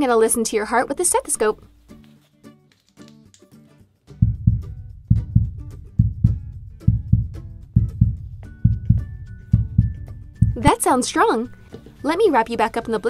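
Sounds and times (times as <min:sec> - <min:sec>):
light guitar music: 0:01.6 - 0:13.0
heartbeat thumps: 0:04.2 - 0:10.8.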